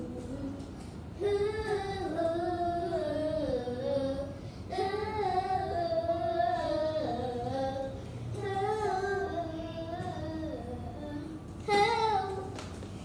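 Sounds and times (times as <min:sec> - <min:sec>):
child singing: 0:00.0 - 0:12.7.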